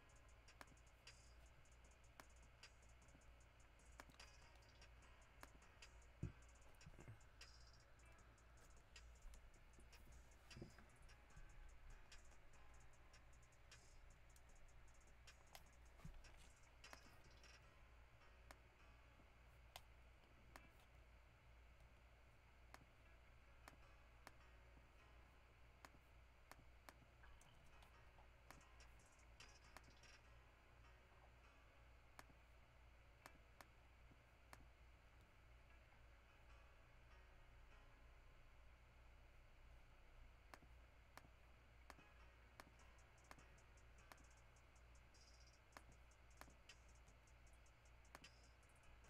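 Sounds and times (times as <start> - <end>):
low steady hum: 0.0 - 49.0
computer mouse clicks: 0.1 - 17.6, 25.8 - 30.2.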